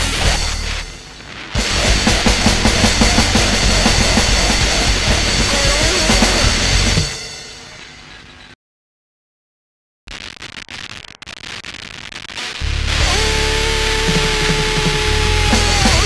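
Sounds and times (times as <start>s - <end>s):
rapid drumming: 0.0s - 7.7s, 12.6s - 16.0s
distorted guitar: 0.0s - 8.4s, 10.1s - 16.0s.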